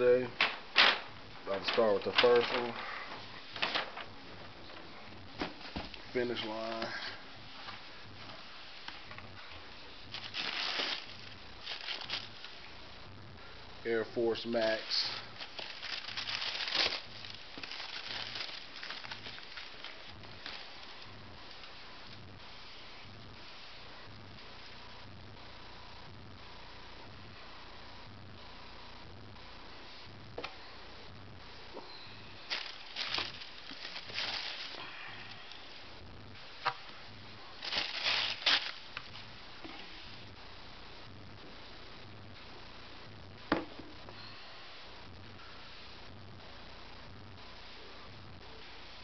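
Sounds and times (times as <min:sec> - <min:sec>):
tissue paper rustling and crinkling: 0:01.5 - 0:12.7, 0:14.6 - 0:21.7, 0:32.4 - 0:35.4, 0:37.6 - 0:40.2.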